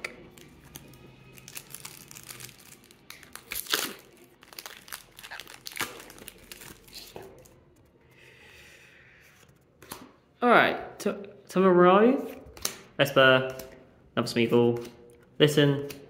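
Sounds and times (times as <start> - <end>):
foil wrapper crinkling: 0.3 - 7.6.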